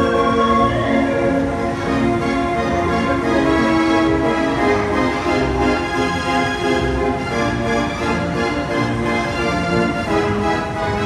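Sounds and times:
fairground organ music: 0.0s - 11.0s.

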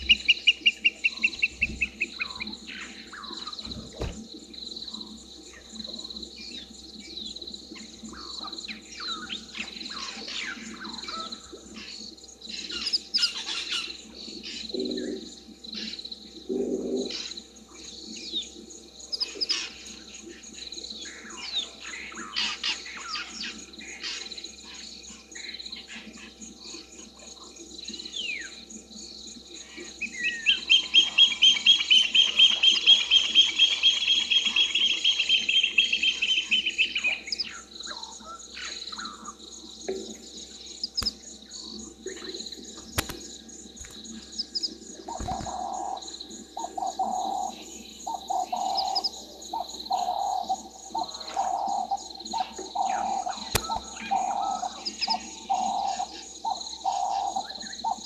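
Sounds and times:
birds chirping and calling: 0.0s - 4.2s, 5.6s - 16.0s, 29.6s - 58.0s
insect whine: 0.0s - 58.0s.

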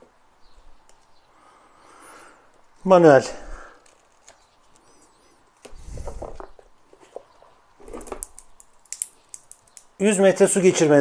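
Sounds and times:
plastic film rustling: 3.8s - 4.9s
small clicks: 8.1s - 9.9s.

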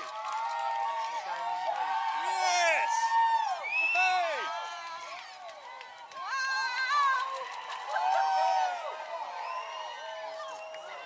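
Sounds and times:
crowd cheering and whooping: 0.0s - 11.0s.

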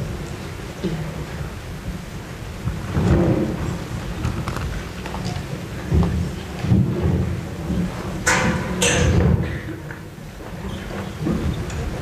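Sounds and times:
low rumbling rustling noise: 0.0s - 12.0s.

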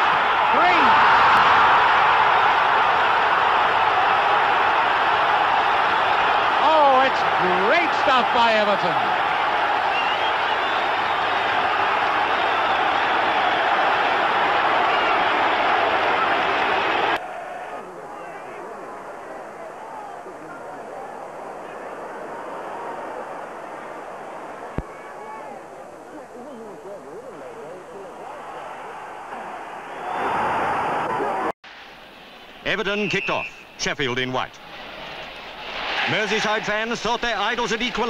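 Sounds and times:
stadium crowd cheering: 0.0s - 26.2s, 27.3s - 31.5s, 32.7s - 38.0s.

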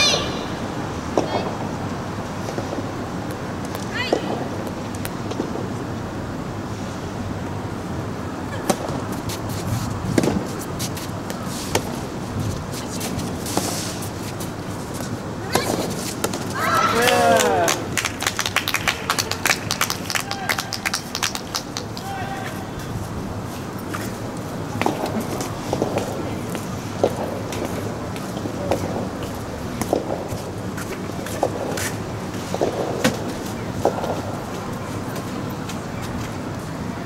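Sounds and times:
loud high shout: 0.0s - 0.6s, 16.5s - 17.9s, 22.0s - 22.8s
racket hitting tennis ball: 8.6s - 12.1s, 13.0s - 17.7s, 29.8s - 30.3s
people clapping: 16.6s - 22.9s.

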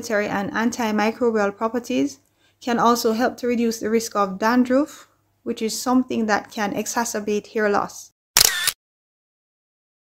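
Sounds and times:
sharp shutter-like noise burst: 8.4s - 8.8s.

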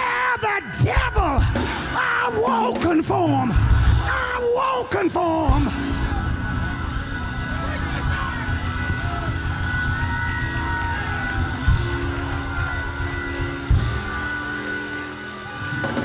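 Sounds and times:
church band sustained chords: 0.0s - 16.0s
drum and cymbal hits: 0.8s - 16.0s.

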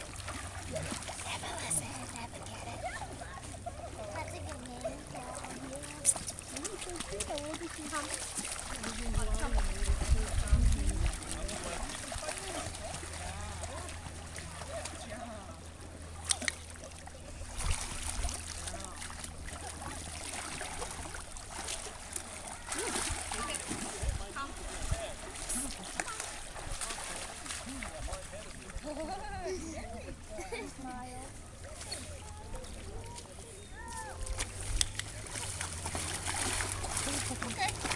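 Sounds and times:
people's voices: 0.0s - 20.9s, 22.1s - 37.9s
water splashing and sloshing: 0.0s - 37.9s.

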